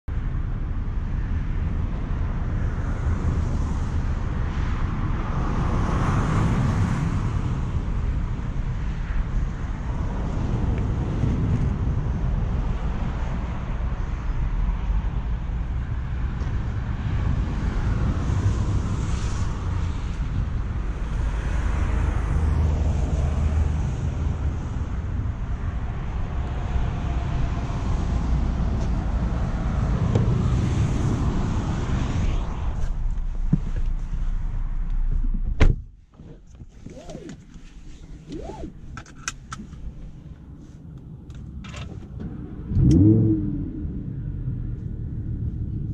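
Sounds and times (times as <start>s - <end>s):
vehicles passing: 0.1s - 35.7s, 36.5s - 45.9s
highway traffic rumble: 0.1s - 45.9s
wind on microphone: 0.9s - 35.8s, 36.5s - 39.0s.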